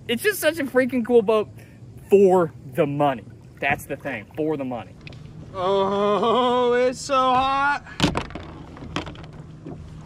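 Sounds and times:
thump: 0:08.0 - 0:09.1.

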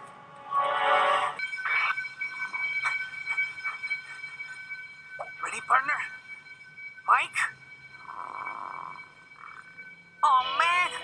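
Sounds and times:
high two-tone alarm: 0:00.4 - 0:11.0.

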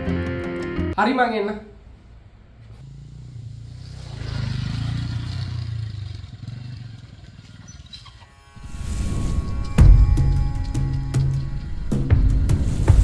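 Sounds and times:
motorcycle engine running: 0:02.8 - 0:08.1.

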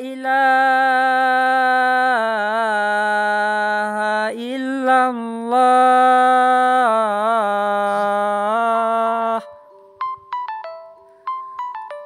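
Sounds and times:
melody of ringing notes: 0:09.0 - 0:12.0.

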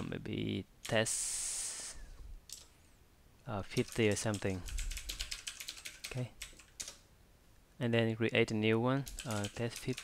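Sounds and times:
typing on computer keyboard: 0:03.7 - 0:07.0, 0:09.1 - 0:10.0.

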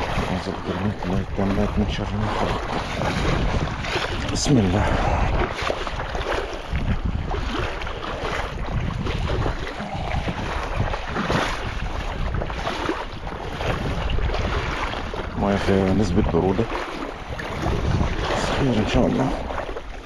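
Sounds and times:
sea water lapping: 0:00.0 - 0:20.0
wind on microphone: 0:00.0 - 0:20.0.

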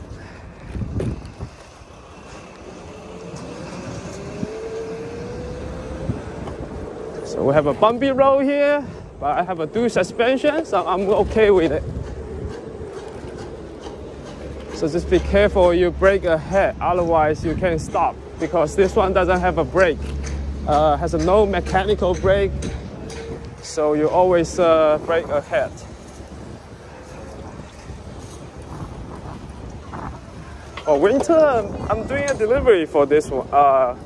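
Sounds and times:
electric scooter rolling: 0:00.0 - 0:34.0
wind buffeting microphone: 0:00.0 - 0:34.0
scooter rolling over rough asphalt: 0:00.7 - 0:08.7.

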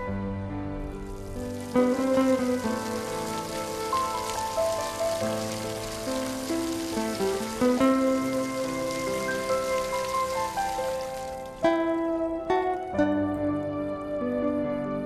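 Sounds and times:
slow instrumental music: 0:00.0 - 0:15.0
steady hiss: 0:00.7 - 0:11.9.

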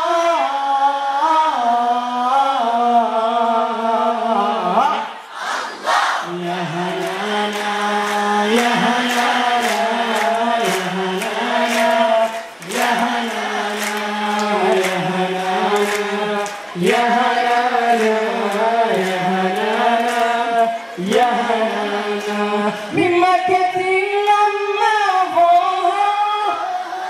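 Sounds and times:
men chanting in unison: 0:00.0 - 0:27.0
faint clapping: 0:07.0 - 0:20.4.

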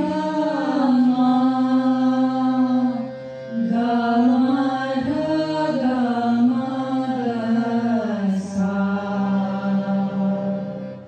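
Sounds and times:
women singing chant in unison: 0:00.0 - 0:10.8
steady harmonium note: 0:00.0 - 0:11.0.

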